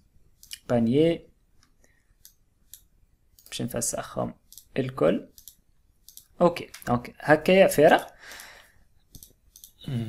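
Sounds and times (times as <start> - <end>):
computer mouse clicks: 1.6 - 3.6, 4.5 - 4.7, 5.3 - 6.9, 7.9 - 9.8
soft breath out: 8.2 - 8.9.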